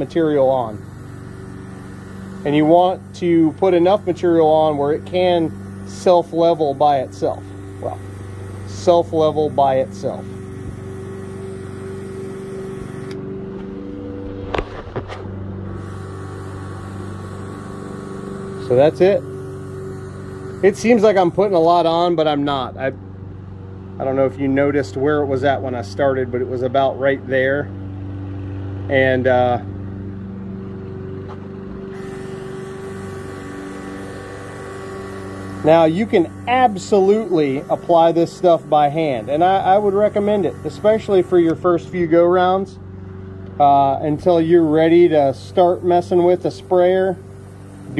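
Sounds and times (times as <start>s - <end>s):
airflow hiss: 0.0s - 13.2s, 15.6s - 22.0s, 32.0s - 41.8s, 43.9s - 47.9s
paint sprayer compressor humming: 0.0s - 47.9s.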